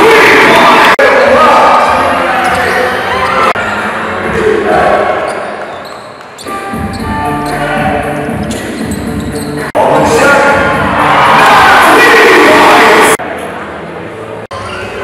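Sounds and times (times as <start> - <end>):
arena music: 0.0 - 15.0.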